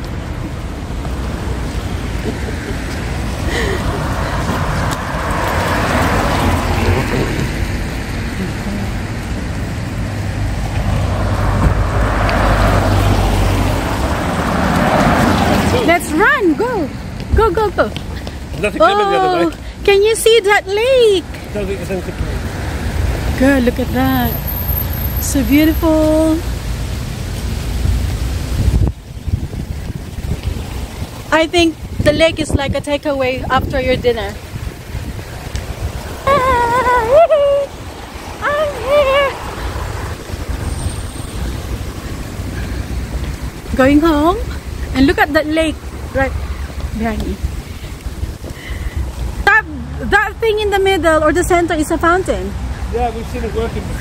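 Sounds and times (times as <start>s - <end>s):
wind buffeting microphone: 0.0s - 18.8s, 27.5s - 49.5s
cars passing close by: 0.0s - 54.0s
steady low traffic rumble: 0.0s - 54.0s.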